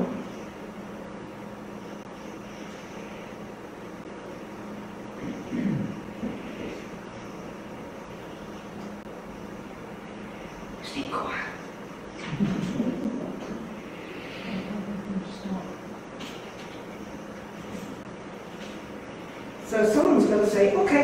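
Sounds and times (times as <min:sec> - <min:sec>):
steady low hum: 0:00.0 - 0:21.0
short low vocal sound: 0:05.2 - 0:06.6.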